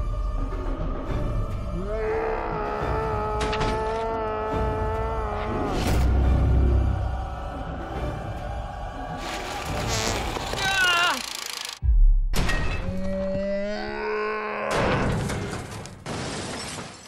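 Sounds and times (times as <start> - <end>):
dramatic soundtrack music: 0.0 - 10.8.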